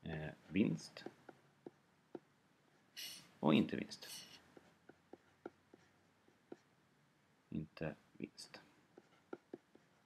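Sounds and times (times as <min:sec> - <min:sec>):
stylus tapping on drawing tablet: 0:01.0 - 0:02.3, 0:04.5 - 0:06.7, 0:09.0 - 0:09.9.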